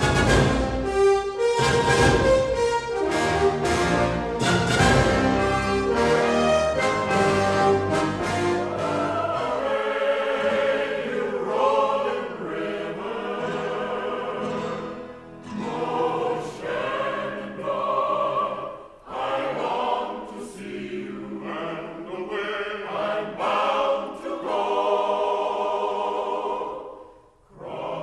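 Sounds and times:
choir singing with orchestra: 0:00.0 - 0:28.0.

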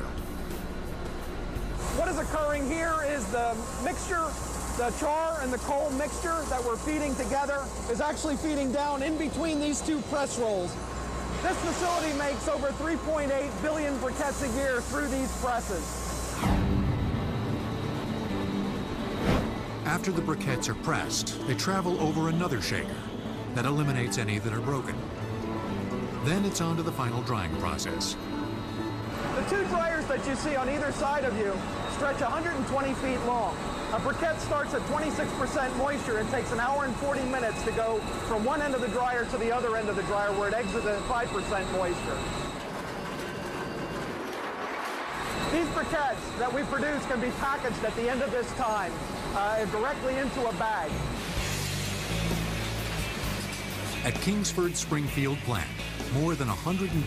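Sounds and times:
press machinery humming: 0:00.0 - 0:57.0.

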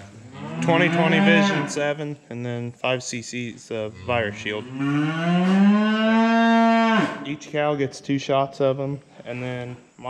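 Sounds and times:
cow mooing: 0:00.2 - 0:01.9, 0:03.9 - 0:07.3.

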